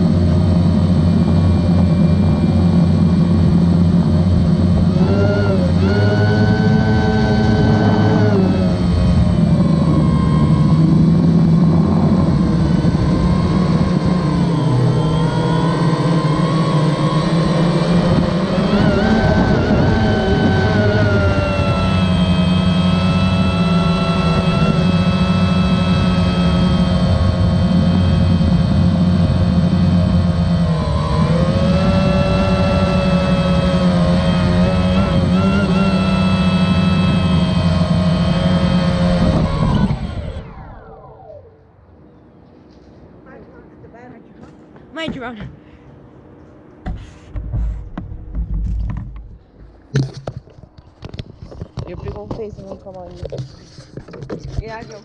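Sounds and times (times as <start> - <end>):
drone motors and propellers whining: 0.0 - 55.0.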